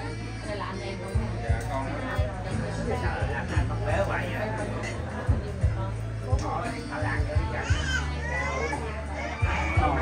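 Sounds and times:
music: 0:00.0 - 0:10.0
people talking: 0:00.0 - 0:10.0.

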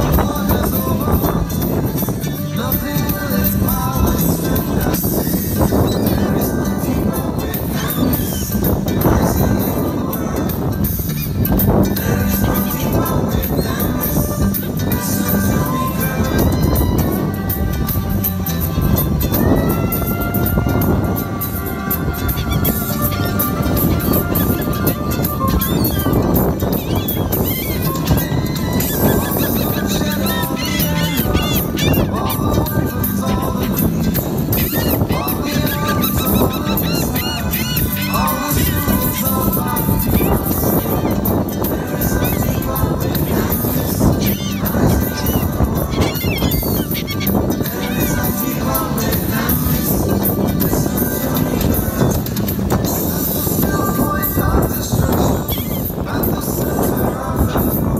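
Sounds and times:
gulls calling: 0:00.0 - 0:57.9
music from portable speaker: 0:00.0 - 0:57.9.

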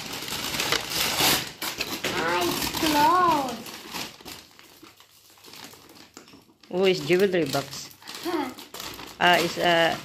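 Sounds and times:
paper gift bag crinkling: 0:00.0 - 0:10.0.

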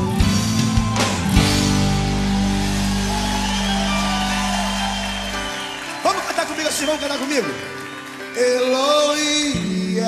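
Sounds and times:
gospel band music: 0:00.0 - 0:10.0.

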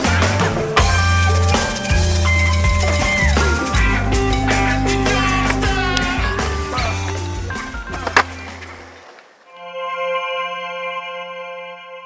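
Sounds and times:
music: 0:00.0 - 0:08.9, 0:09.5 - 0:12.0
skateboard clack: 0:00.0 - 0:09.5
skateboard wheels rolling on concrete: 0:00.0 - 0:09.6.

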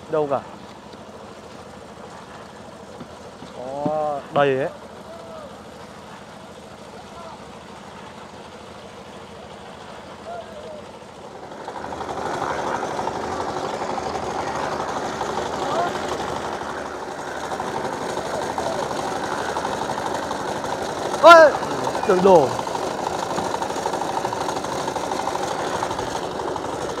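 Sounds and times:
concrete mixer engine running: 0:00.0 - 0:27.0
faint voices: 0:03.5 - 0:07.6, 0:14.1 - 0:16.5.

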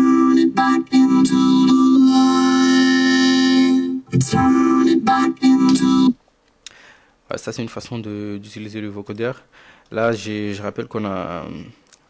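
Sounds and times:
vocoded singing voice: 0:00.0 - 0:06.2.

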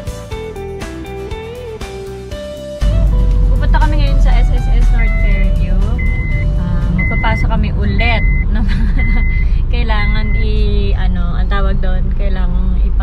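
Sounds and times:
engine and road rumble: 0:00.0 - 0:13.0
voices: 0:03.6 - 0:13.0
car warning chime beeping: 0:03.9 - 0:11.9.

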